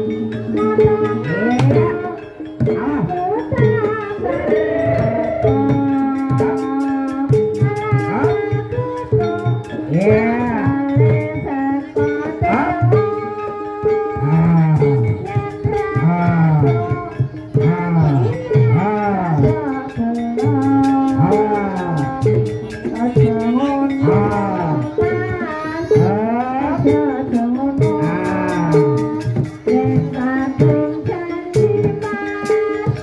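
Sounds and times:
quick percussion strikes: 0:00.0 - 0:33.0
sustained pitched melody: 0:00.0 - 0:33.0.

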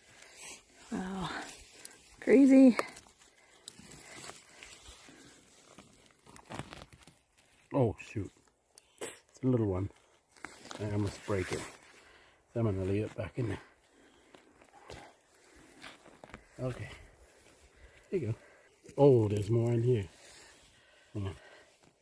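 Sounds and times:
rustling and scraping of soil: 0:00.0 - 0:22.0.

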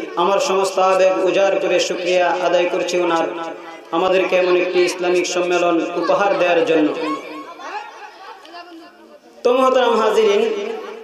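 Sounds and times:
man's amplified voice: 0:00.0 - 0:07.3, 0:08.9 - 0:11.0
faint background chatter: 0:00.0 - 0:11.0.

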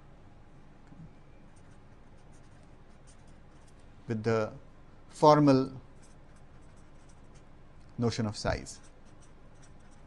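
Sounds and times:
marker pen scratching on paper: 0:01.5 - 0:03.9, 0:05.9 - 0:07.6, 0:08.6 - 0:10.0.

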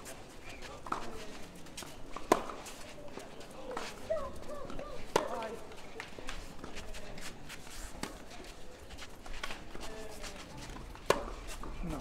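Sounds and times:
feet scuffing on clay court: 0:00.0 - 0:12.0
tennis racket hitting ball: 0:02.2 - 0:02.7, 0:05.1 - 0:05.5, 0:11.0 - 0:11.6.

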